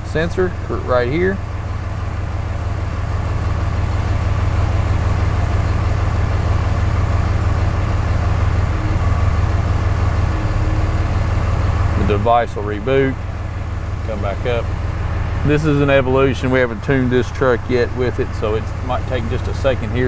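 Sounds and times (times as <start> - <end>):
diesel truck engine idling: 0.0 - 20.0.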